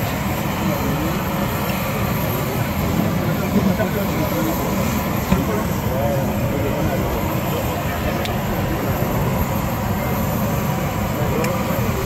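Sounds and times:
jet engine running: 0:00.0 - 0:12.0
voices of people: 0:00.0 - 0:12.0.

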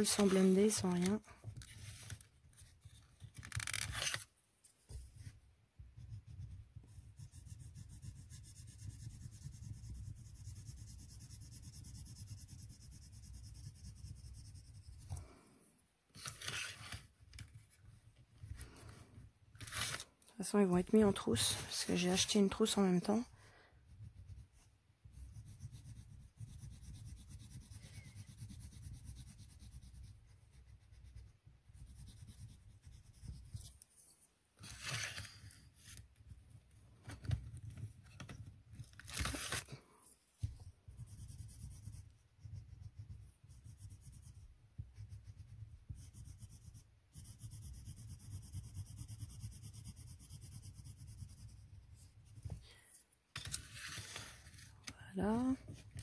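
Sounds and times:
colour pencil scratching on paper: 0:00.0 - 0:04.2, 0:04.8 - 0:15.4, 0:16.2 - 0:36.6, 0:40.4 - 0:56.0.

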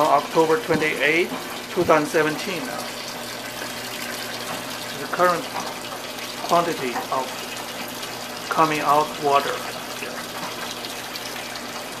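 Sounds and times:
water pouring into washing machine: 0:00.0 - 0:12.0.

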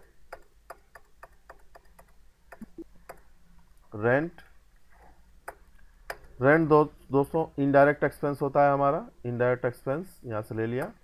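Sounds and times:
faint sharp ticking clicks: 0:00.0 - 0:06.4.

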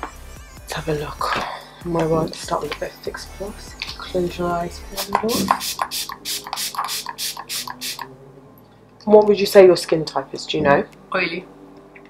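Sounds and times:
spray bottle spritzes: 0:05.0 - 0:08.1.

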